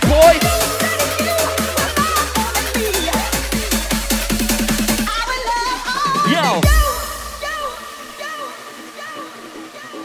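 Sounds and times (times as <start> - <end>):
repeating synth notes: 0.0 - 5.7
hissing noise wash: 0.0 - 9.7.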